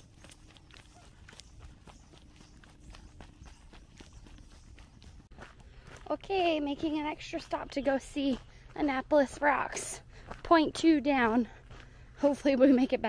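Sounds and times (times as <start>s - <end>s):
footsteps on dry leaves: 0.0s - 8.8s.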